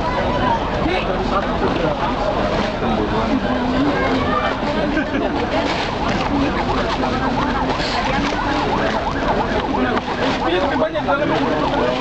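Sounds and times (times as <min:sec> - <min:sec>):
voices: 0:00.0 - 0:12.0
fast warbling siren: 0:05.8 - 0:12.0.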